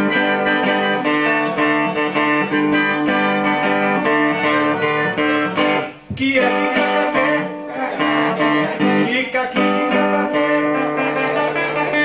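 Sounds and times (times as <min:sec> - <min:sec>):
higher melody line: 0:00.0 - 0:09.0
acoustic guitar: 0:00.0 - 0:12.0.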